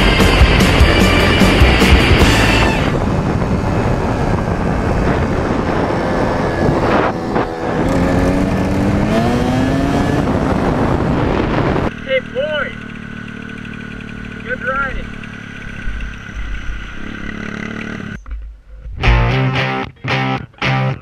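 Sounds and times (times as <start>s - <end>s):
wind rush on microphone: 0.0s - 11.9s
dirt bike engine revving: 0.0s - 18.2s.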